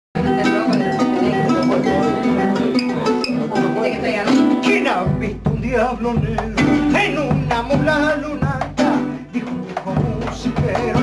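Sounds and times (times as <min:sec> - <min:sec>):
fingerpicked acoustic string instrument: 0:00.2 - 0:11.0.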